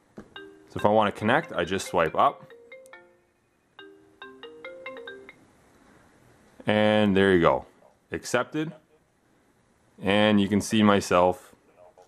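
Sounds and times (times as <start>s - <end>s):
marimba-like ringtone melody: 0.3s - 5.4s.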